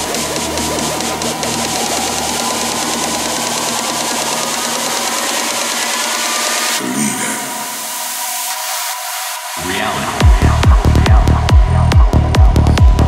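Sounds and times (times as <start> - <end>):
deep bass: 9.6 - 13.0.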